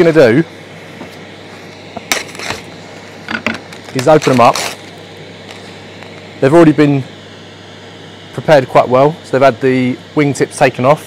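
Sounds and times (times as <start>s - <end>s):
plastic crackling: 3.3s - 6.2s
knife cutting plastic film: 3.8s - 4.8s.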